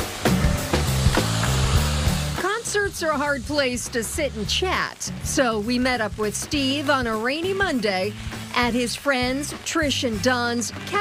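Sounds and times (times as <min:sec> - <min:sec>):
drum beat: 0:00.0 - 0:04.7
bass line: 0:00.0 - 0:07.0.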